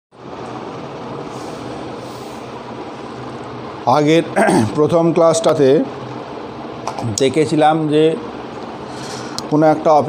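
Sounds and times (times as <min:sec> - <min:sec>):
constant hum and hiss: 0:00.1 - 0:10.0.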